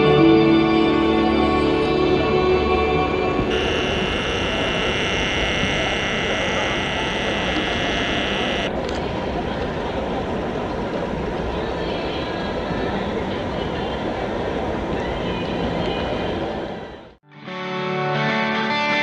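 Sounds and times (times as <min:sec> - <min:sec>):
high-pitched steady whine: 0:03.2 - 0:08.8
rushing stadium ambience: 0:08.7 - 0:17.2.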